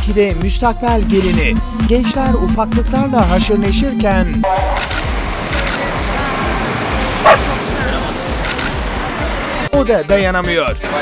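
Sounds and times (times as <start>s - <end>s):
background music with beat: 0.0s - 5.5s
people chattering: 1.9s - 9.7s
dog barking: 7.2s - 7.5s.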